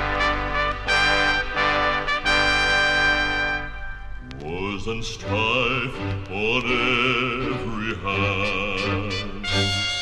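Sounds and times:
vinyl click: 4.2 - 5.0
male vocal quartet singing harmony: 4.6 - 9.7.

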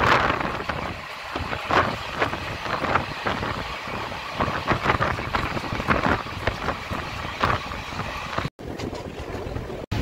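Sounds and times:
train wheels rolling on rails: 0.0 - 10.0
wind buffeting microphone: 0.0 - 10.0.

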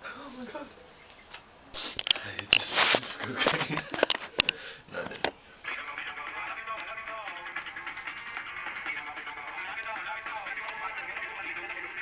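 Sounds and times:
faint voice: 0.0 - 0.8.

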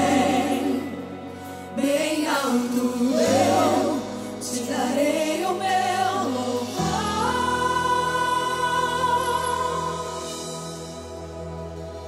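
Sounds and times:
female group singing gospel: 0.0 - 10.0.

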